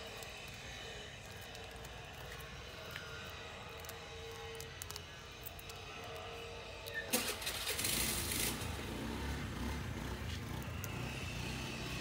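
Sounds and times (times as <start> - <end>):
vehicle engine hiss and rumble: 0.0 - 12.0.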